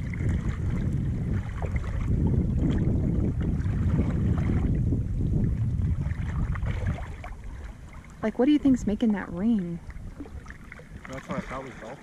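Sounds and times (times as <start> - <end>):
water lapping against hull: 0.0 - 12.0
wind buffeting microphone: 0.0 - 12.0.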